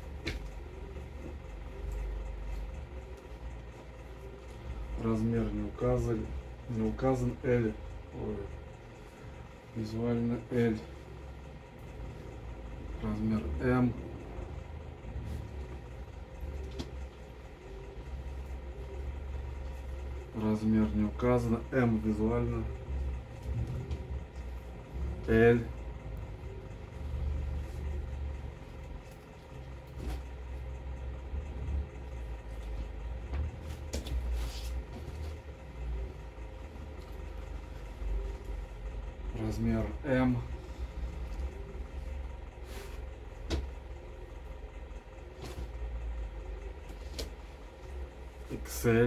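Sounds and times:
low background hum: 0:00.0 - 0:49.0.

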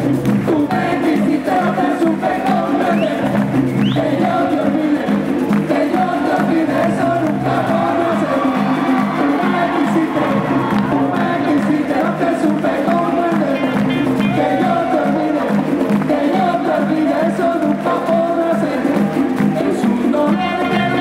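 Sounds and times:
hand drums: 0:00.0 - 0:21.0
voices singing together: 0:00.0 - 0:21.0.

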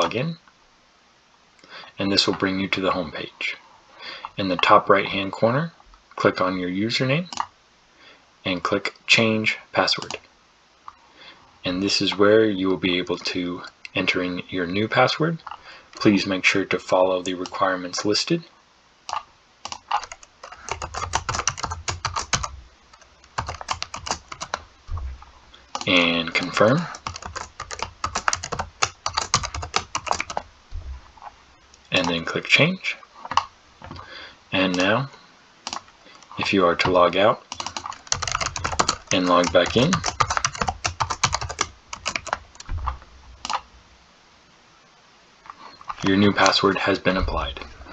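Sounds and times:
typing on computer keyboard: 0:19.1 - 0:24.6, 0:25.7 - 0:30.4, 0:35.6 - 0:35.8, 0:37.5 - 0:42.7.

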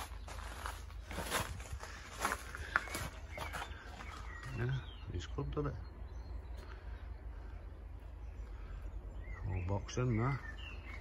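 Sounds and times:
footsteps: 0:00.0 - 0:04.6.

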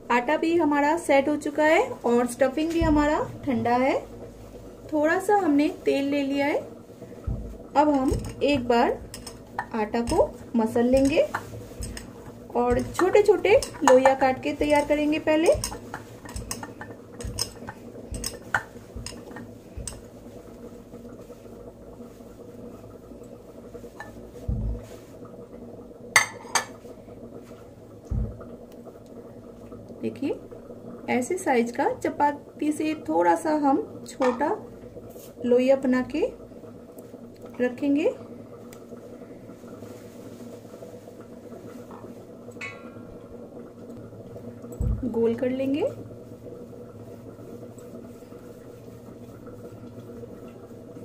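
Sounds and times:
steady low hum: 0:00.0 - 0:51.0
soft low thump: 0:02.8 - 0:03.2, 0:07.2 - 0:08.2, 0:24.4 - 0:24.9, 0:28.1 - 0:28.4, 0:44.8 - 0:45.1.

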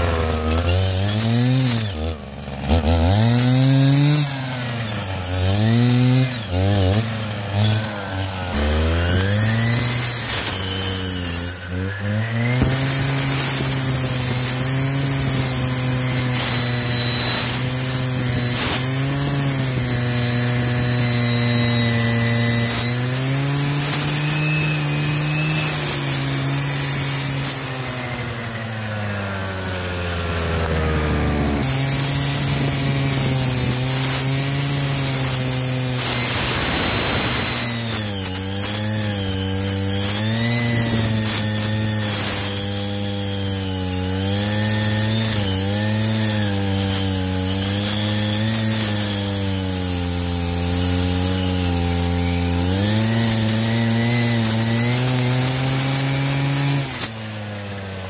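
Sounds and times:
blade teeth rasping wood: 0:00.0 - 0:58.0
brushcutter engine at high revs: 0:00.0 - 0:58.0.

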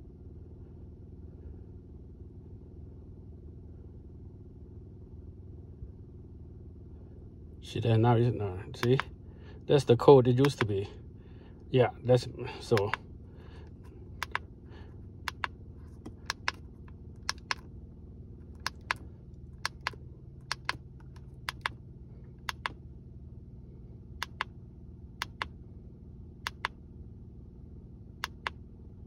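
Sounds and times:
low steady hum: 0:00.0 - 0:29.0
plastic button clicks: 0:14.2 - 0:14.4, 0:15.3 - 0:16.6, 0:17.2 - 0:17.6, 0:18.6 - 0:19.0.

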